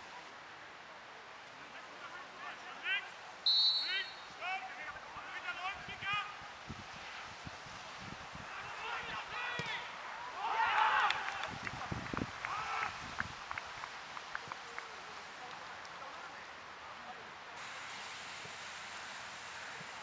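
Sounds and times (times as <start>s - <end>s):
referee's whistle blast: 3.5s - 4.3s
players shouting: 8.4s - 11.5s
crowd shouts and cheers: 8.6s - 11.6s.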